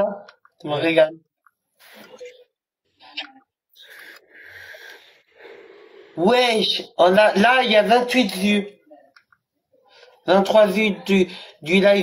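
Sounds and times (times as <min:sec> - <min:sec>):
soft breathing: 0:03.7 - 0:06.2.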